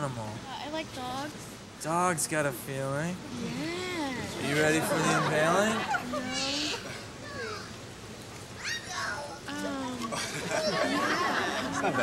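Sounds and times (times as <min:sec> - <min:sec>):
overlapping chatter: 0:03.6 - 0:07.8, 0:08.5 - 0:12.0.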